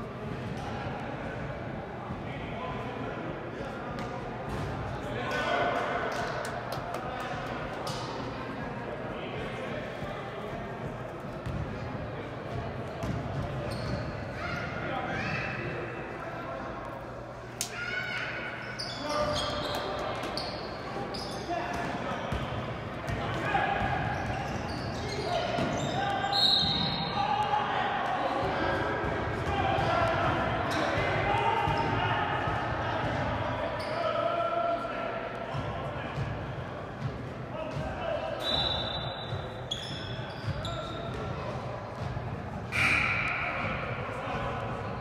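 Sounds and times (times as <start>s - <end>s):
echoing shouts: 17.6s - 20.0s, 23.2s - 24.2s, 25.0s - 36.2s, 42.7s - 44.8s.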